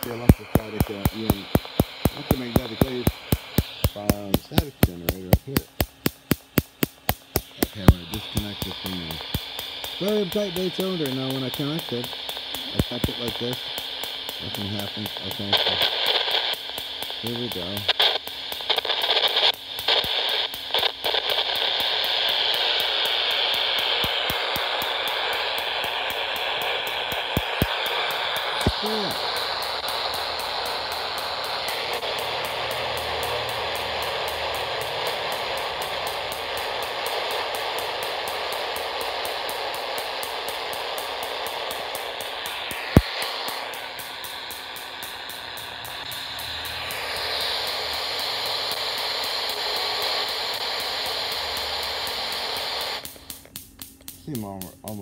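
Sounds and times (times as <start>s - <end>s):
sharp click: 0.0s - 10.4s, 24.0s - 49.6s, 50.5s - 55.0s
electronic static hiss: 0.0s - 55.0s
small clicks: 17.8s - 55.0s.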